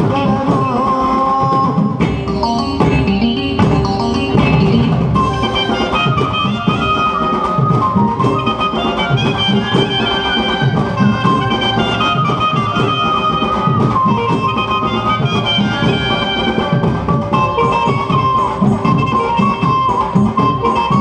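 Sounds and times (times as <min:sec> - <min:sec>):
steady drum beat: 0:00.0 - 0:21.0
wind-like melody line: 0:02.0 - 0:21.0.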